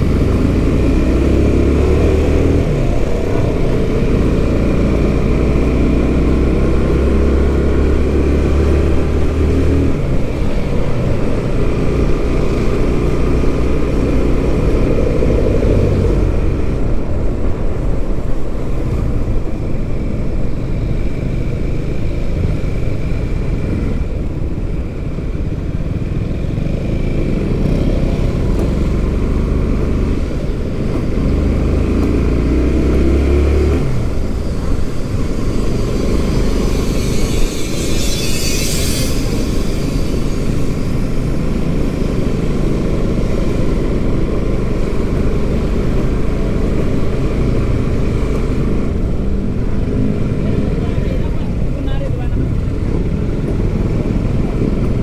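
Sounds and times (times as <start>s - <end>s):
wind and road noise: 0.0s - 55.0s
motorcycle engine running: 18.9s - 55.0s.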